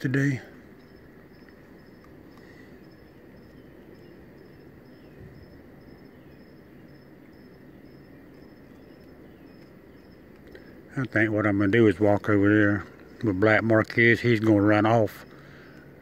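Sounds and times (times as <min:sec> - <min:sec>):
crickets chirping: 0:00.0 - 0:16.0
faint steady trill: 0:00.0 - 0:16.0.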